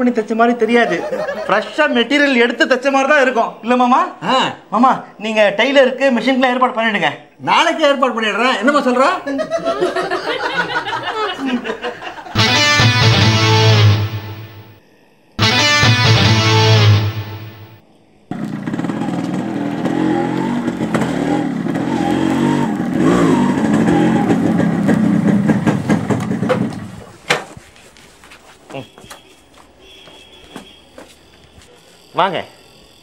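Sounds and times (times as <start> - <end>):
guitar music stings: 12.4 - 14.8, 15.4 - 17.8
two-stroke motorcycle engine: 18.3 - 27.0.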